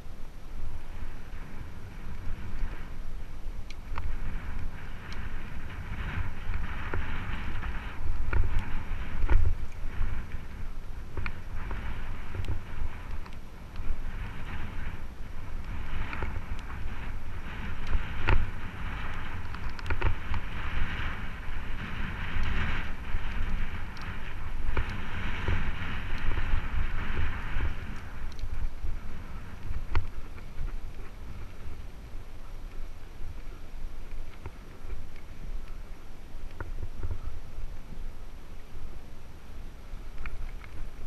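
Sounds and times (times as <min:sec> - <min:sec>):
wind buffeting microphone: 0:00.0 - 0:41.0
bike clicks and rattles: 0:00.9 - 0:31.9, 0:40.1 - 0:41.0.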